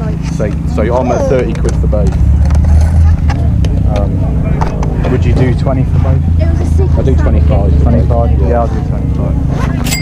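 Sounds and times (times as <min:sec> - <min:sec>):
steady low rumble: 0:00.0 - 0:09.5
faint voices: 0:00.0 - 0:09.8.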